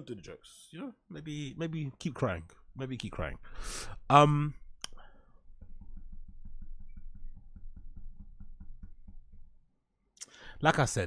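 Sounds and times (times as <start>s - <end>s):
tapping on a desk: 5.6s - 9.6s.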